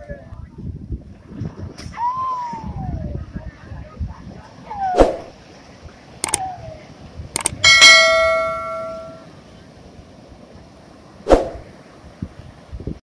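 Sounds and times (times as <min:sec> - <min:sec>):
mouse clicks: 0:07.4 - 0:07.6
bright bell ding: 0:07.4 - 0:09.3.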